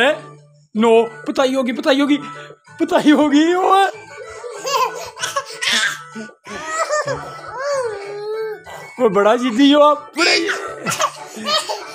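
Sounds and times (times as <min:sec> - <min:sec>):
background music: 0:00.0 - 0:11.9
toddler laughing: 0:04.1 - 0:08.6, 0:10.2 - 0:11.9.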